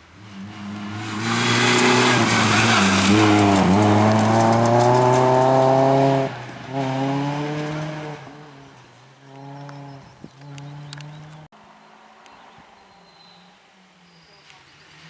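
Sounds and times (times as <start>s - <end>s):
rally car engine at full throttle: 0.0s - 11.5s
gravel hissing from tyres: 0.4s - 5.7s.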